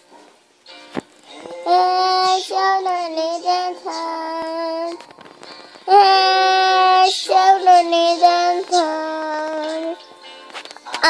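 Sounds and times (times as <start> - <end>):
child singing in high voice: 1.4 - 5.0, 5.9 - 10.0.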